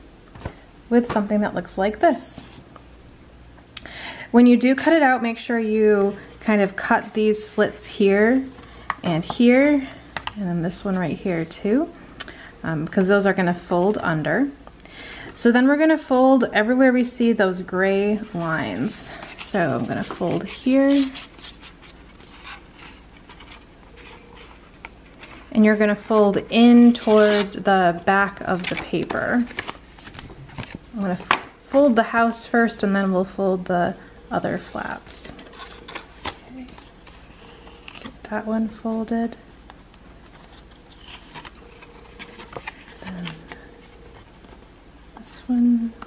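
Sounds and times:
card rustling and scraping: 0:18.0 - 0:25.5, 0:26.7 - 0:32.0, 0:35.3 - 0:38.3, 0:39.6 - 0:44.8
stiff paper folding crackles: 0:40.2 - 0:44.8.

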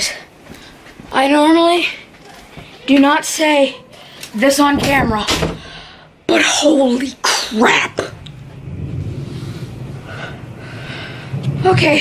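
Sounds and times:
person breathing out heavily: 0:05.6 - 0:06.2, 0:09.2 - 0:11.6.

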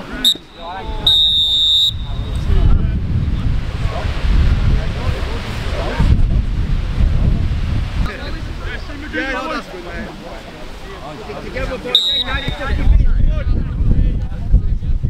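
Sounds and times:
wind buffeting microphone: 0:00.0 - 0:10.1, 0:11.4 - 0:15.0
referee's whistle blast: 0:00.2 - 0:02.5, 0:11.9 - 0:12.7.

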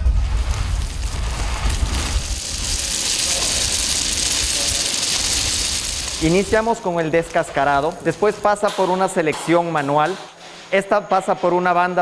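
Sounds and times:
low rumble: 0:00.0 - 0:06.7
seeds pouring into metal hopper: 0:00.3 - 0:08.5.

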